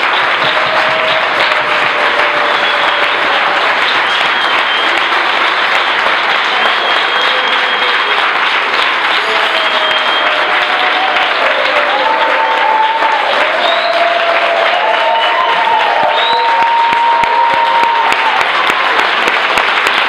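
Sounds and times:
congregation applauding: 0:00.0 - 0:20.0.

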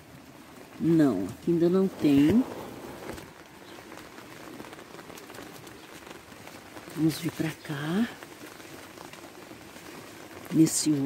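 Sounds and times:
light rain falling: 0:00.0 - 0:11.0.

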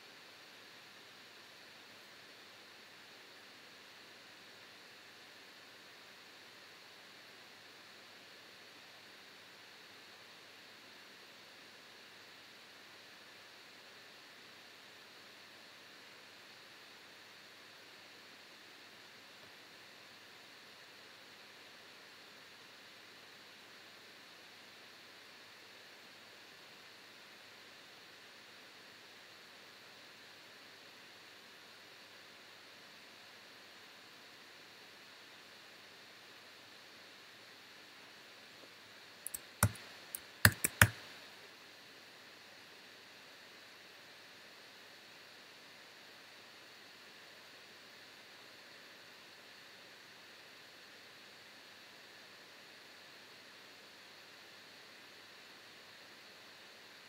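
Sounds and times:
laptop cooling fan hiss: 0:00.0 - 0:57.0.

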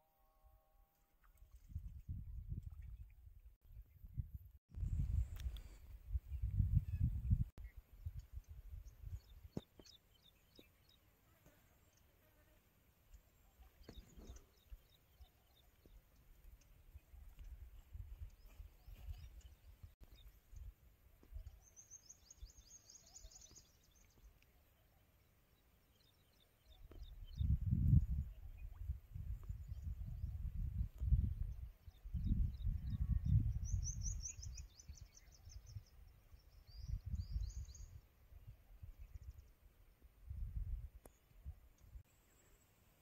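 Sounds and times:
wind rumble on microphone: 0:01.5 - 0:09.6, 0:16.5 - 0:21.6, 0:26.7 - 0:42.0
faint bird chirps: 0:05.6 - 0:20.7, 0:21.3 - 0:39.7.

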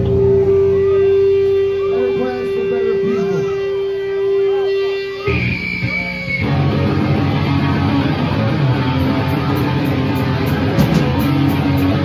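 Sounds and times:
high squeal: 0:00.0 - 0:06.8
held electric guitar tone: 0:00.0 - 0:12.0
punk band playing: 0:00.0 - 0:12.0
voices: 0:00.8 - 0:06.5.

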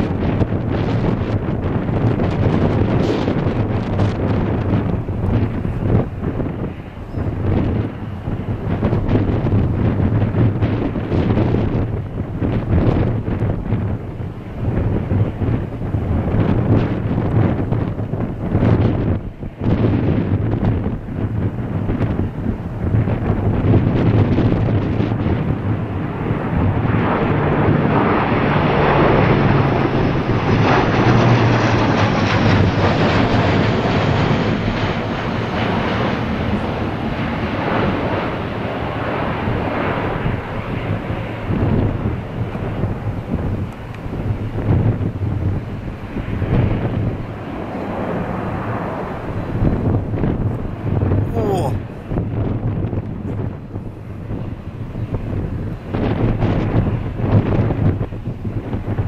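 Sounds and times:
turboprop aircraft passing overhead: 0:00.0 - 0:59.0.

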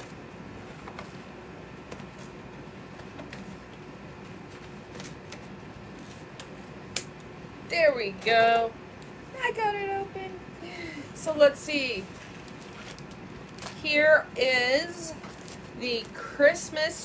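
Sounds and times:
envelope crinkling: 0:12.1 - 0:13.8.

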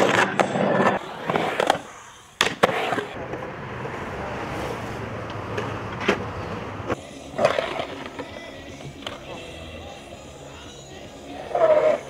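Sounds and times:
skateboard sharp hit: 0:00.0 - 0:03.4
skateboard rolling on concrete: 0:00.0 - 0:12.0.

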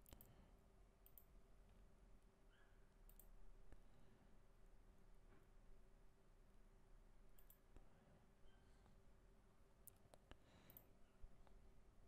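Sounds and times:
faint sharp clicks: 0:01.0 - 0:01.3, 0:03.1 - 0:03.8.

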